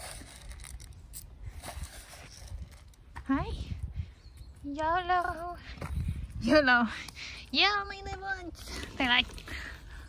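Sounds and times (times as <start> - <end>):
camera handling rumble: 0.0 - 3.2.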